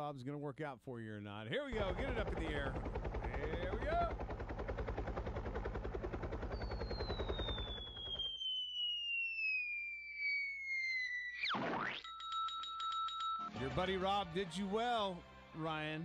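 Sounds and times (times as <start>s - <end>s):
helicopter rotor chopping: 1.7s - 8.3s
steady ringing tone with ticks: 4.3s - 8.2s, 11.9s - 13.7s
long falling whistle: 6.5s - 13.4s.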